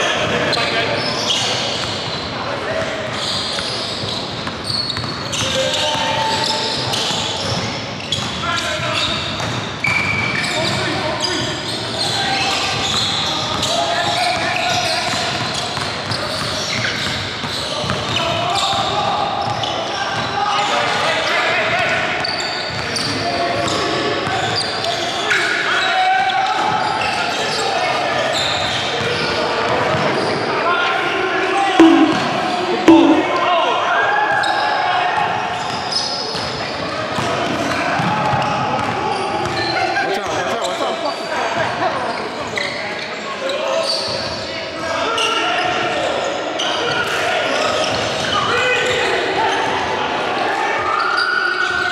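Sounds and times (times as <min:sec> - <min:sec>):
basketball bouncing on hardwood floor: 0:31.8 - 0:32.2, 0:32.9 - 0:33.2
players' voices calling out: 0:31.8 - 0:33.4
sudden loud sounds: 0:31.8 - 0:33.4.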